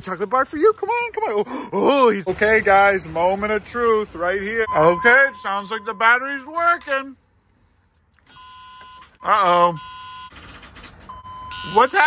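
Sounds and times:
warning buzzer tone: 8.3 - 10.3, 11.4 - 12.0.

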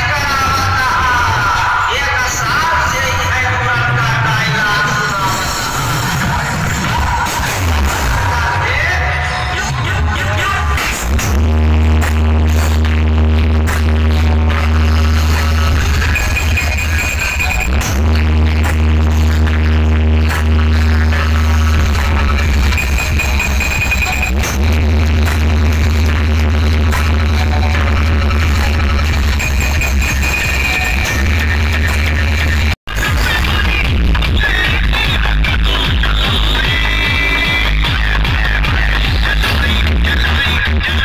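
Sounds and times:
electronic dance music: 0.0 - 41.0
heavy bass: 0.0 - 41.0.

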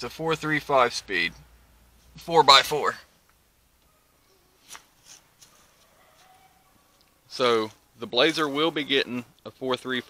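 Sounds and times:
faint rustle: 3.2 - 7.8.

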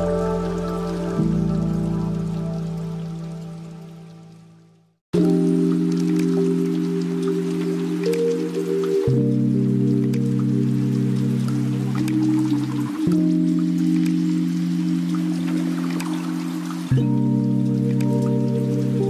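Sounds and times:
soft sustained chords: 0.0 - 19.0.

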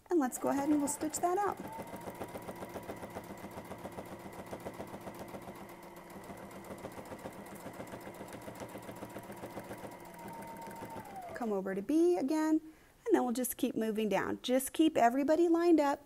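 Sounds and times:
sewing machine needle strokes: 0.2 - 11.5
sewing machine motor whine: 0.4 - 11.5.

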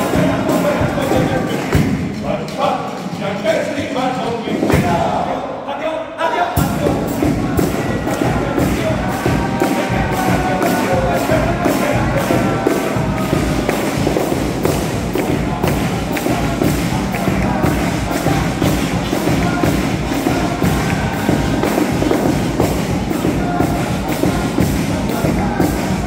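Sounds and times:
steady drum beat: 0.0 - 3.2, 4.4 - 5.3, 6.6 - 26.0.

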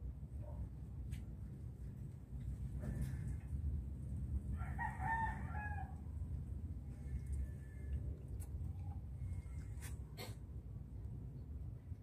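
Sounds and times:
low steady rumble: 0.0 - 12.0
rooster crowing: 4.5 - 6.1.

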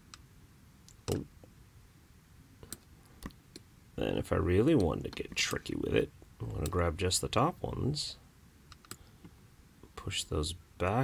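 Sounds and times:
computer mouse clicks: 8.7 - 9.0.

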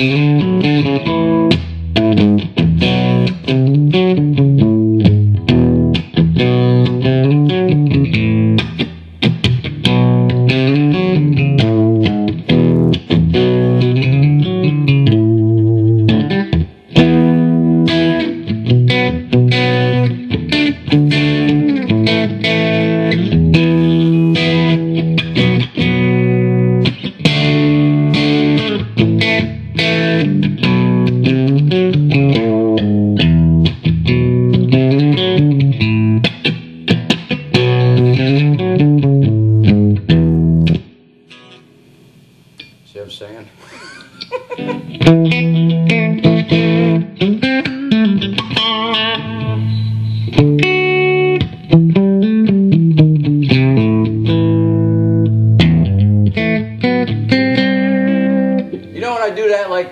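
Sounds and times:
electric guitar through amplifier: 0.0 - 59.9.

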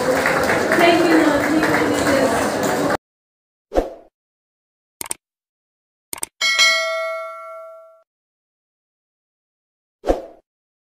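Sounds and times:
notification bell ding: 6.4 - 8.0.

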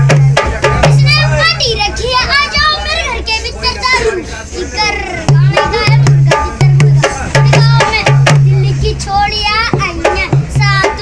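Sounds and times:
hand drum booming and slapping: 0.0 - 1.2, 5.3 - 8.8, 9.7 - 11.0
boy singing: 0.0 - 11.0.

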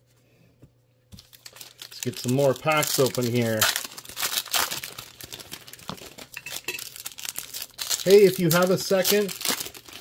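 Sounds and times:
foil wrapper crinkling: 1.2 - 10.0.

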